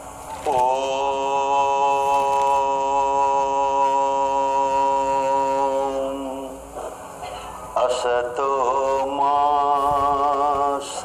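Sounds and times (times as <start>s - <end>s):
chanted voice holding long note: 0.4s - 6.9s.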